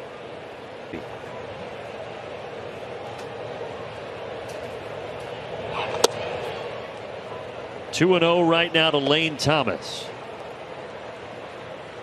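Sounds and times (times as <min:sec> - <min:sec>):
crowd murmur: 0:00.1 - 0:08.0.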